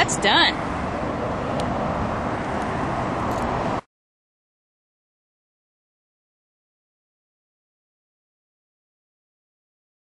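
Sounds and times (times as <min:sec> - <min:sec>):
rushing outdoor background noise: 0:00.0 - 0:03.9.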